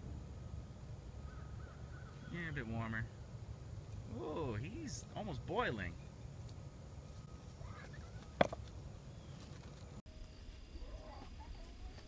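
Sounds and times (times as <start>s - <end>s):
rock knocking against rock: 8.4s - 8.7s.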